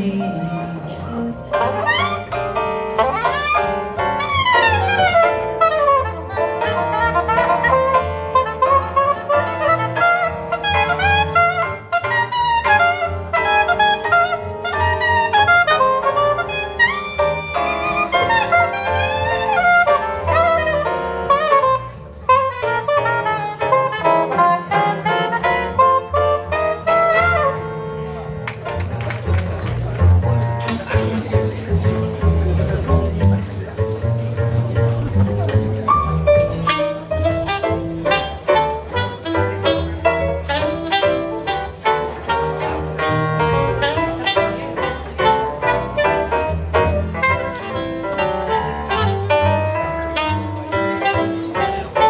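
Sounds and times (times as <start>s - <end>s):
saxophone melody: 0.0s - 28.3s, 34.5s - 52.0s
plucked double bass: 0.0s - 52.0s
stage piano chords: 0.0s - 52.0s
saxophone phrase: 36.3s - 52.0s.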